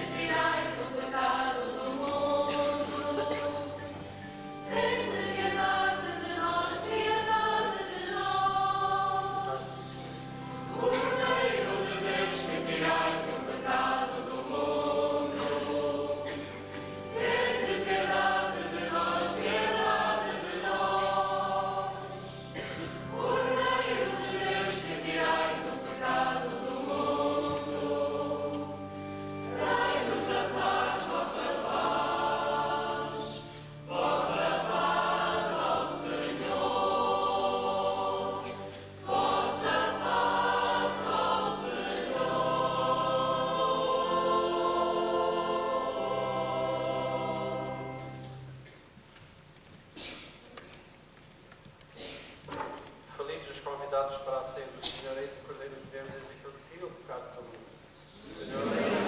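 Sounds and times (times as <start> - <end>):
choir singing in harmony: 0.0 - 48.6, 58.1 - 59.0.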